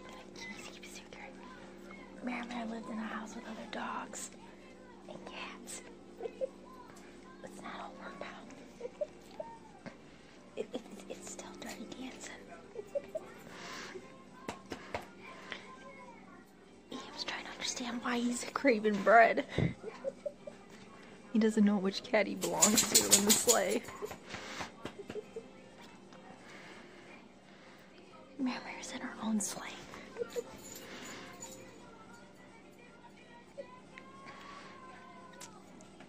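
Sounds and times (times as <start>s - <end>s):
faint indistinct voices: 0.0s - 36.0s
quiet background music: 0.0s - 36.0s.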